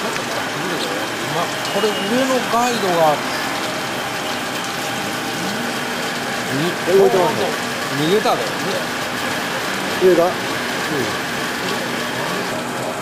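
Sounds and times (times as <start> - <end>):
fish-processing machinery running: 0.0 - 13.0
man speaking: 6.5 - 8.8.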